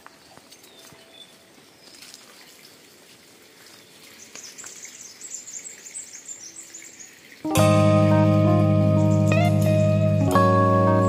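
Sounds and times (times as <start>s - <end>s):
small birds twittering: 0.0s - 2.8s, 3.5s - 7.5s, 8.9s - 10.2s.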